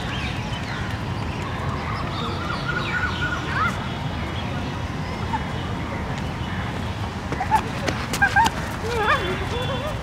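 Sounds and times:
people's voices: 1.4 - 10.0.

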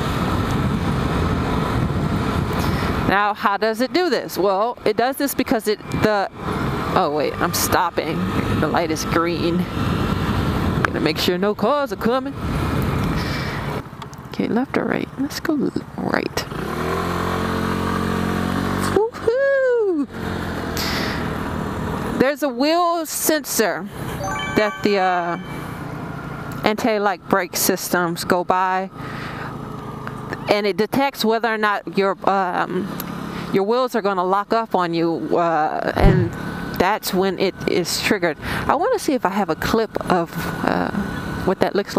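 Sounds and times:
road noise: 0.0 - 41.9
person's drawn-out voice: 36.0 - 36.4
wind rushing on microphone: 36.0 - 36.4.

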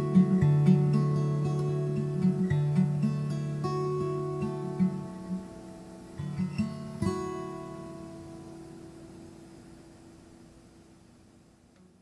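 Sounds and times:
acoustic guitar chord ringing: 0.0 - 12.0
faint steady hiss: 0.0 - 12.0.

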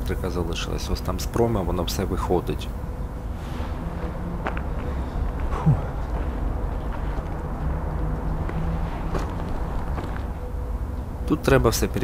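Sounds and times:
footsteps on rubble: 4.4 - 10.4.

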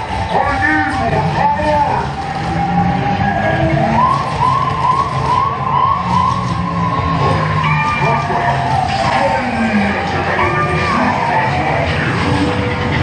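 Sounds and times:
siren-like warbling tone: 0.0 - 13.0
held electronic tone: 3.2 - 12.5.

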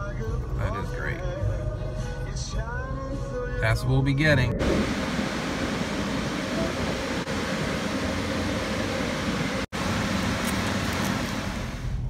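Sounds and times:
low rumble: 2.6 - 9.1
steady rushing noise: 4.4 - 10.1.

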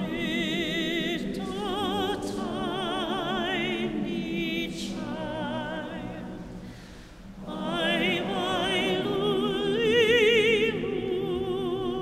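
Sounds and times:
choir singing: 0.0 - 12.0
operatic soprano singing: 0.0 - 12.0.

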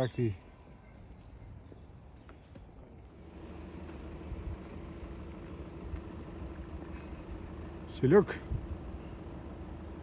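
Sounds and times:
car engine humming: 0.3 - 10.0.

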